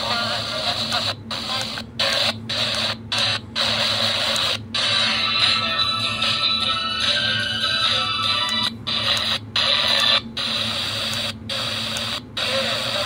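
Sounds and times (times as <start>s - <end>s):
radio fm static hiss: 0.0s - 6.4s, 7.8s - 13.0s
faint radio station audio: 0.0s - 13.0s.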